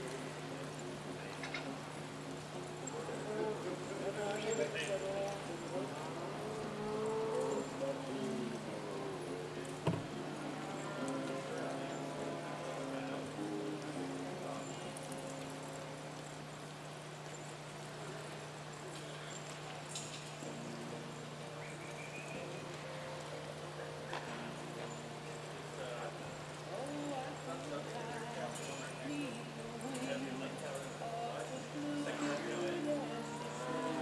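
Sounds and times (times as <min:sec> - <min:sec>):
murmuring voices: 0:00.0 - 0:16.7, 0:17.8 - 0:34.0
faint background music: 0:00.0 - 0:34.0
horses moving on dirt: 0:00.0 - 0:34.0
sharp knocks: 0:09.8 - 0:10.1.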